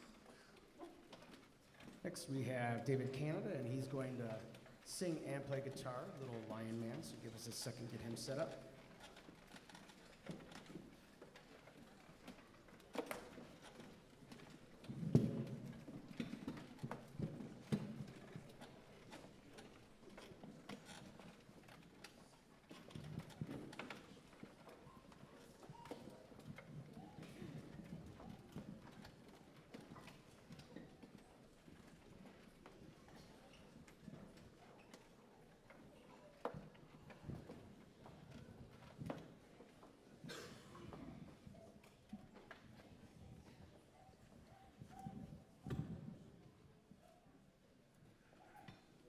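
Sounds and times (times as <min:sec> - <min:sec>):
knocks and thump: 0:15.0 - 0:15.7.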